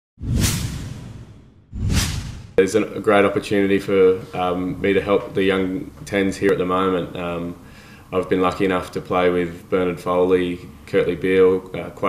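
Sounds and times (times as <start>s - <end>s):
low rumble: 0.2s - 2.6s
whoosh sound effects: 0.2s - 2.6s.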